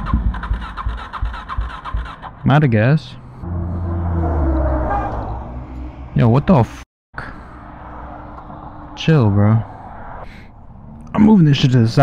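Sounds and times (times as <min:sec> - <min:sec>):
car engine running: 0:00.0 - 0:06.3.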